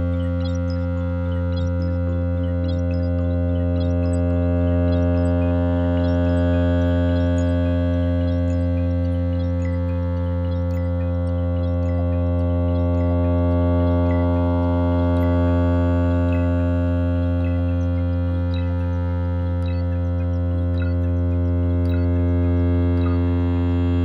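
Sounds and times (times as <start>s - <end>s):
low synthesizer drone: 0.0s - 24.0s.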